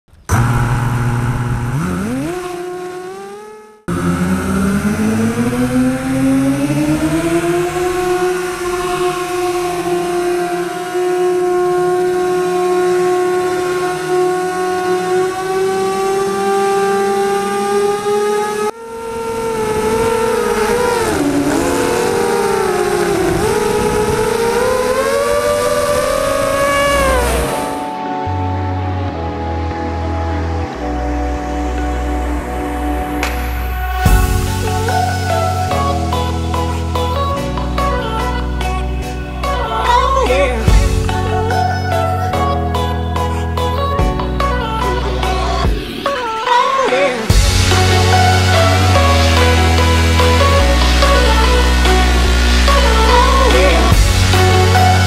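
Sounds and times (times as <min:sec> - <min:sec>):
quadcopter motors whining: 0:00.3 - 0:27.9, 0:39.5 - 0:55.0.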